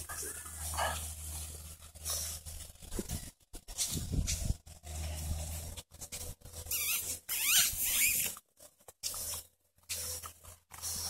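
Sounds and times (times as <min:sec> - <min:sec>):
puppies squealing: 0:06.7 - 0:08.4.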